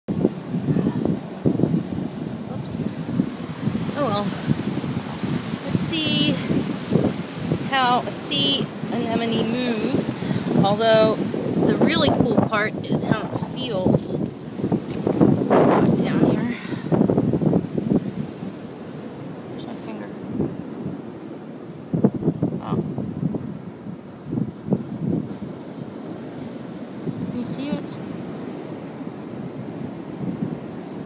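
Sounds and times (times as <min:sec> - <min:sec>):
wind buffeting microphone: 0:00.1 - 0:31.0.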